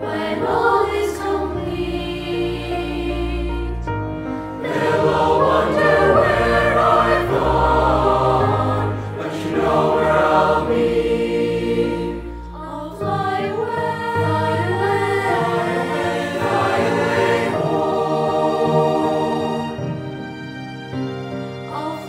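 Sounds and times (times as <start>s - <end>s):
boys' choir singing: 0.0s - 3.8s, 4.5s - 19.8s
young men's voices singing: 4.6s - 12.0s, 15.3s - 19.4s.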